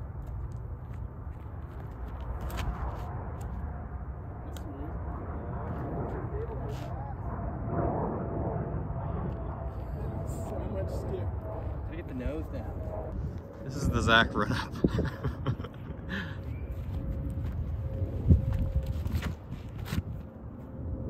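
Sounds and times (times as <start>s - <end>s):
wind rumble on microphone: 0.0s - 21.0s.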